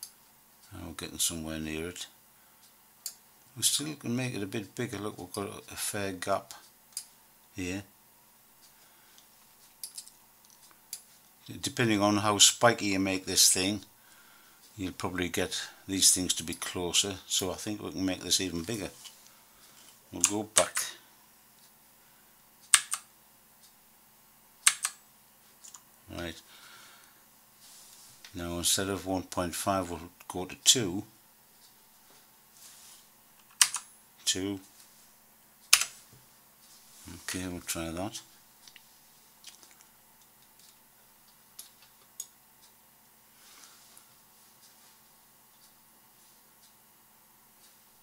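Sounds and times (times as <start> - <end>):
computer mouse clicks: 22.7 - 23.1, 24.6 - 25.0, 33.4 - 33.9.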